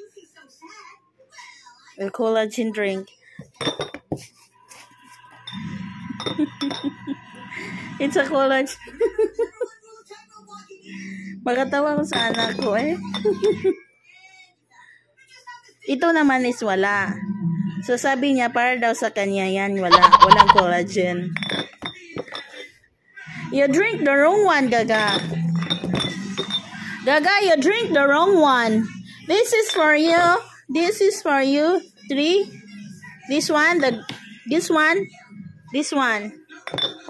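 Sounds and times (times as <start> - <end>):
glass bottles clinking: 3.4 - 4.3, 5.3 - 7.4, 11.7 - 13.7, 19.9 - 20.7, 21.3 - 22.8, 24.5 - 28.7, 29.3 - 30.4, 33.4 - 34.9, 36.6 - 37.0.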